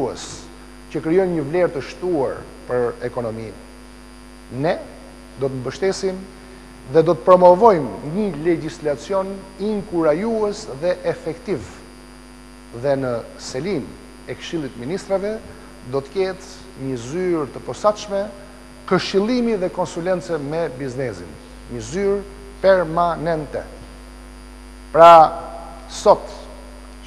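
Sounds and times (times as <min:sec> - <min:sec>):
man speaking: 0:00.0 - 0:03.6, 0:04.5 - 0:11.8, 0:12.8 - 0:23.8, 0:25.0 - 0:26.7
man's voice: 0:00.0 - 0:03.6, 0:04.5 - 0:06.3, 0:06.9 - 0:11.8, 0:12.8 - 0:23.8, 0:25.0 - 0:26.6
electrical mains hum: 0:00.0 - 0:27.0.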